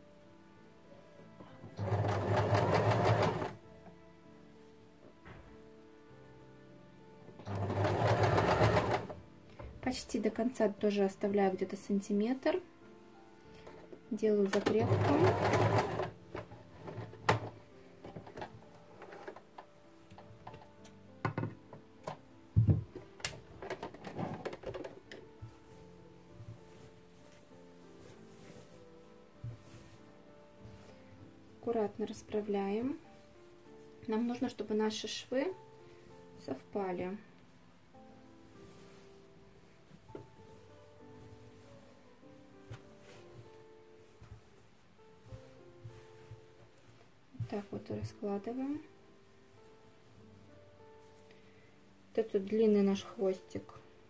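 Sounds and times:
faint background music: 0.0s - 54.0s
fabric rustling and tapping: 13.4s - 31.6s, 38.3s - 48.9s
fabric rustling: 22.8s - 34.8s, 35.4s - 53.4s.

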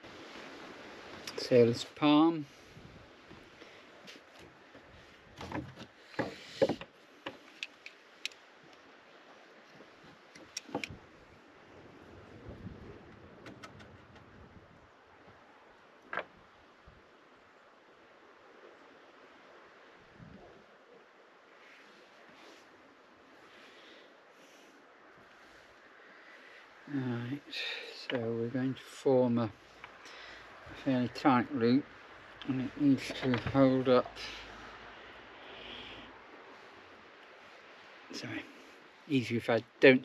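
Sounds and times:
faint steady background noise: 0.0s - 40.0s
knocks and rustles of handling rope: 3.2s - 8.0s
sharp clicks: 13.4s - 14.3s.

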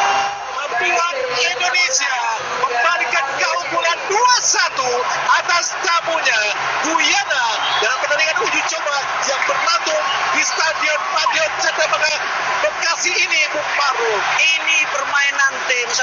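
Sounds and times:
stadium crowd din: 0.0s - 16.0s
man commentating: 0.5s - 16.0s.

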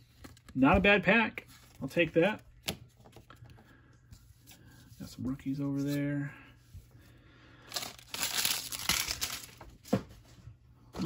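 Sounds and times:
wrapper crinkling: 7.7s - 9.8s.

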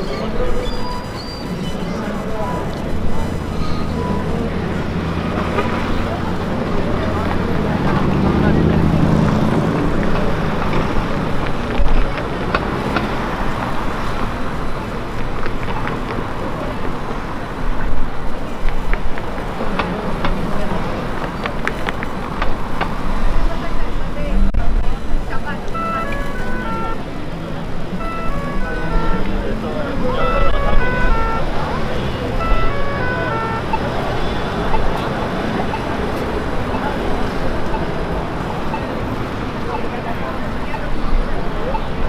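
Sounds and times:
crowd chatter: 0.0s - 42.0s
traffic noise: 0.0s - 42.0s
short melody of high notes: 25.8s - 27.0s, 28.0s - 33.9s.

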